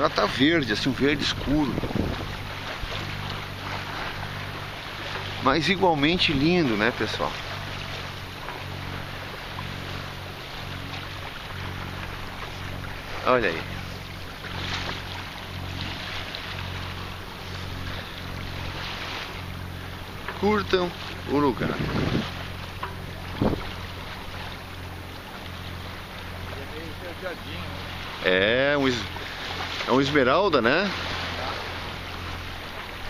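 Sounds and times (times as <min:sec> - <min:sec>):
boat engine humming: 0:00.0 - 0:33.0
wind and water hissing: 0:00.0 - 0:33.0
wind on microphone: 0:00.8 - 0:03.1, 0:21.4 - 0:22.6, 0:23.2 - 0:24.0.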